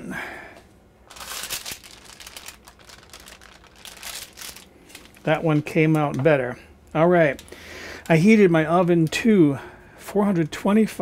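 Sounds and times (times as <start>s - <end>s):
cane basket rustling: 1.1s - 6.4s
parchment paper crinkling: 1.1s - 6.4s, 7.2s - 9.3s.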